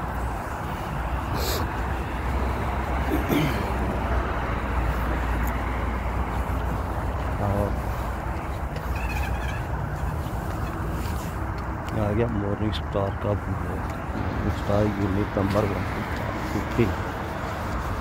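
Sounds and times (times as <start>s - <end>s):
road traffic rumble: 0.0s - 18.0s.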